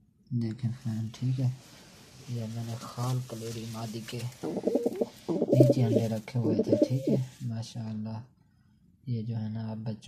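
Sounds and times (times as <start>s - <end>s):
pigeon cooing: 4.4s - 7.4s.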